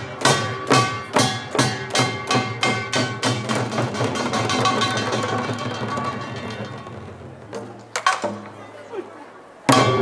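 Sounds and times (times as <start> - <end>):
percussion ensemble drums and gongs: 0.0 - 8.9, 9.6 - 10.0.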